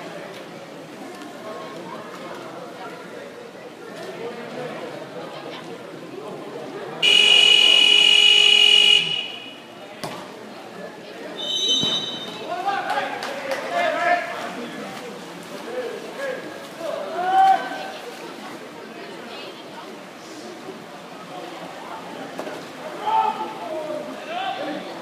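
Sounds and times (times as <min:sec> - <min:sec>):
electronic buzzer: 0:07.0 - 0:09.6
high whistle blast: 0:07.0 - 0:09.6.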